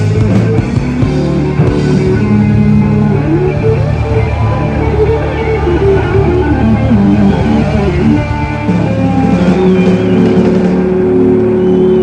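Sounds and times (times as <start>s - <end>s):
blues band sustained chord: 0.0s - 12.0s.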